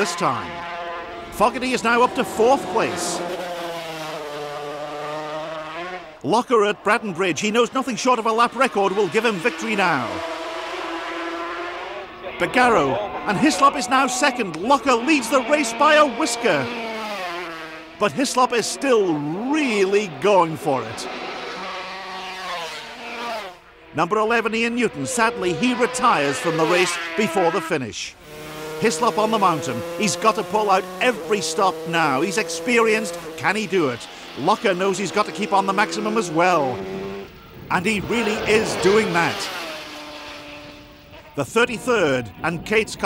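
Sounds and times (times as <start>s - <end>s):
motorcycle engine at high revs passing: 0.0s - 43.0s
two-stroke motorcycle engine: 25.3s - 43.0s.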